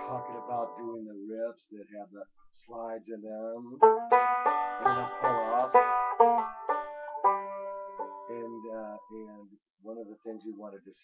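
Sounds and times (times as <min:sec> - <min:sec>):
banjo plucked notes: 0:00.0 - 0:01.1, 0:03.7 - 0:09.3.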